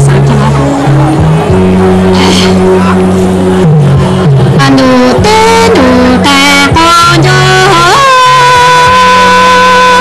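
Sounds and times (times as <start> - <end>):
woman singing: 4.6 - 10.0.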